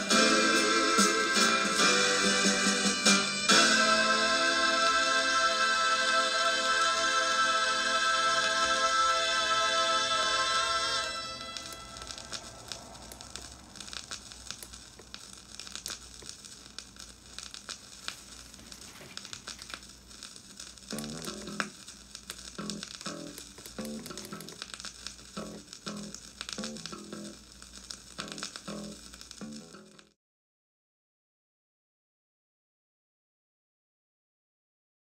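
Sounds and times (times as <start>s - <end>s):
vinyl record crackle and pops: 0.0s - 30.2s.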